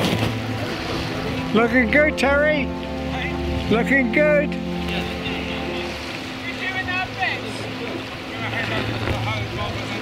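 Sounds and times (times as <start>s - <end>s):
water lapping: 0.0s - 10.0s.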